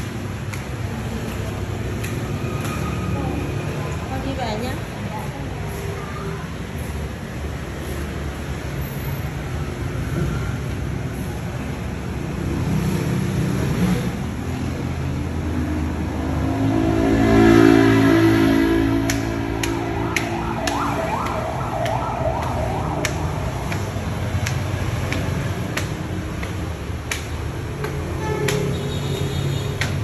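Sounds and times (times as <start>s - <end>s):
street traffic engines: 0.0s - 30.0s
louder engine passing: 15.2s - 25.5s
siren-like rising whoop: 16.4s - 24.4s.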